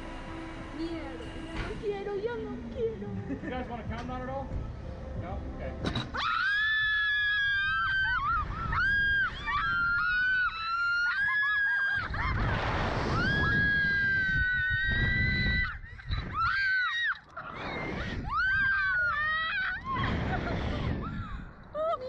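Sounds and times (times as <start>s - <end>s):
women screaming: 6.2s - 22.0s
wind rushing over microphone: 6.8s - 16.5s, 17.4s - 22.0s.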